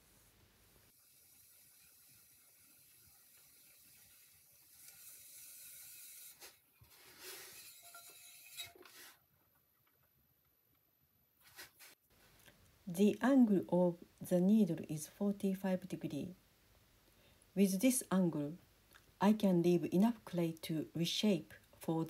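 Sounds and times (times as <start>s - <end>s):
soft scrapes: 3.8s - 9.2s, 11.4s - 12.4s.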